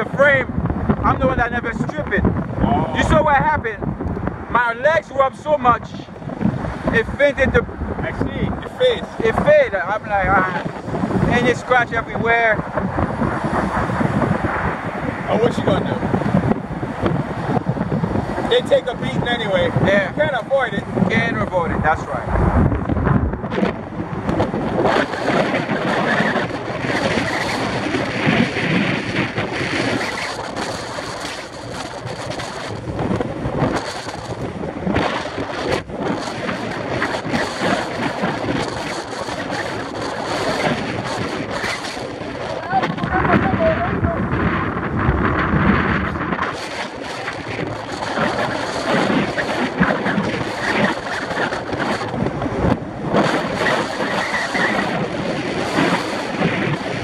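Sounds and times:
road noise from moving vehicle: 0.0s - 57.0s
wind buffeting microphone: 0.0s - 57.0s.

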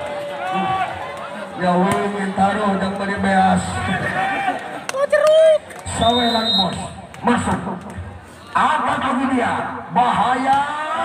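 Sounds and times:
crowd chatter: 0.0s - 11.0s
men calling and shouting: 0.0s - 11.0s.

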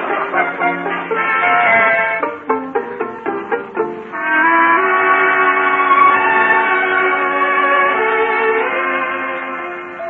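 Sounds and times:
brass music bridge: 0.0s - 10.0s.

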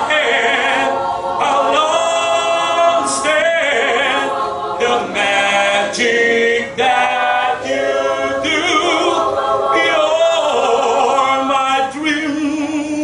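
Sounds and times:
mixed choir singing: 0.0s - 13.0s.

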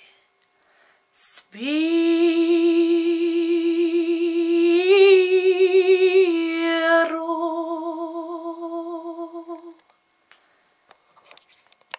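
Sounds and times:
woman singing classical note: 1.2s - 9.8s.

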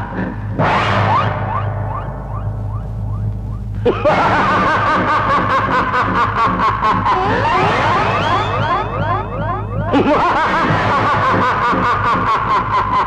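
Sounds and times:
sudden hit: 0.0s - 11.8s
rising whistle-like glides: 1.1s - 3.7s
wavering high tone: 7.5s - 10.2s.

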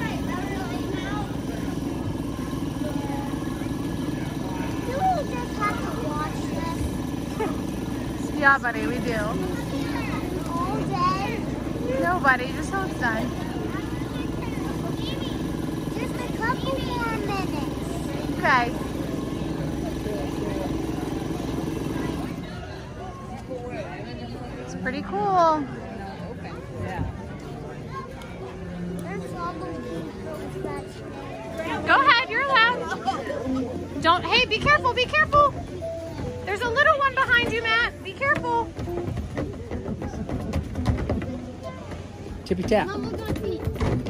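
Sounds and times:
low mechanical drone: 0.0s - 23.5s
faint voices: 0.0s - 44.0s
footsteps on piano keys: 37.4s - 44.0s.

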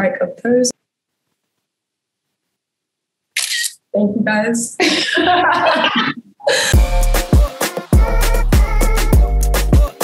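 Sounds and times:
camera shutter click: 3.4s - 3.8s.

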